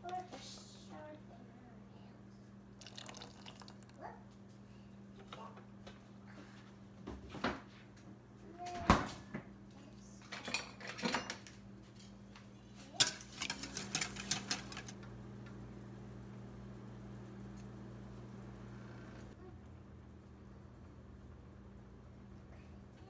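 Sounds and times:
utensil clinking on steel bowl: 13.0s - 15.0s.

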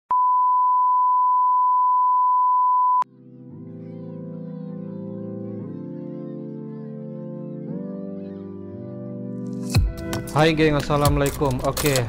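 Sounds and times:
electronic beep: 0.1s - 3.0s
music with sustained chords: 3.1s - 11.7s.

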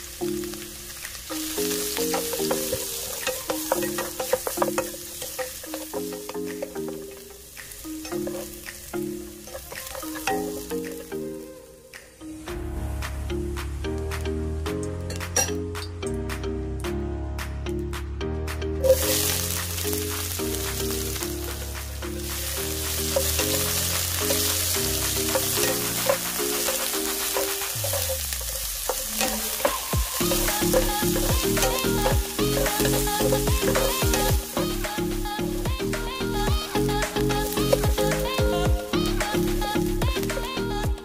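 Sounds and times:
pepper strips sizzling in hot oil: 0.0s - 11.5s, 18.8s - 40.8s
wooden spatula stirring in wok: 1.2s - 10.7s, 18.9s - 35.2s.

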